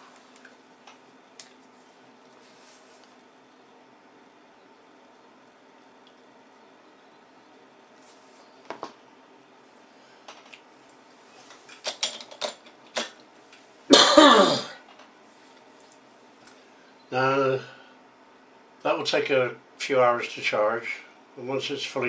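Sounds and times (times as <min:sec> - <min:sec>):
items clicking on a workbench: 0:11.5 - 0:13.2
man clearing his throat: 0:13.9 - 0:14.8.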